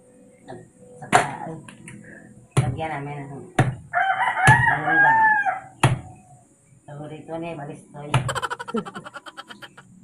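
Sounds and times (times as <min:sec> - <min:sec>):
rooster crowing: 0:03.9 - 0:05.7, 0:08.3 - 0:09.8.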